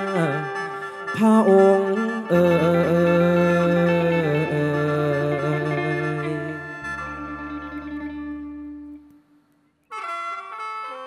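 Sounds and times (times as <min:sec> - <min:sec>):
folk ensemble music: 0:00.0 - 0:11.0.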